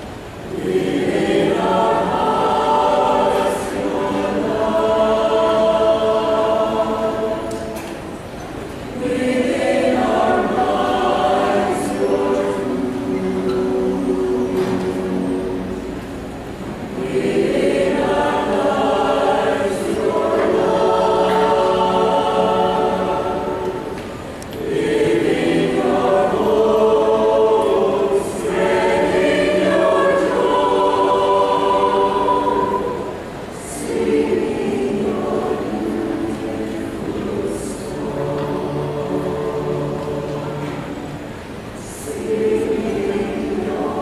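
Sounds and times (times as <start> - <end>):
mixed choir singing: 0.0 - 44.0.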